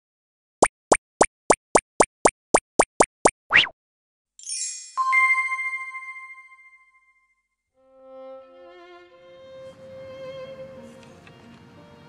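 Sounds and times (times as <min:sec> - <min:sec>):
cartoon plops: 0:00.6 - 0:03.8
rising cartoon pop: 0:00.6 - 0:03.8.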